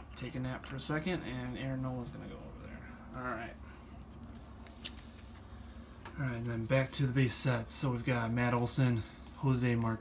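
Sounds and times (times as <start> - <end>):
trading cards rustling and ticking: 3.3 - 10.0.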